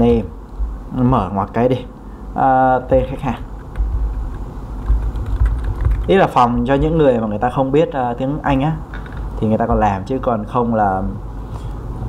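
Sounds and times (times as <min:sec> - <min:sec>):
steady low rumble: 0:00.0 - 0:12.0
keyboard key clicks: 0:03.6 - 0:06.1.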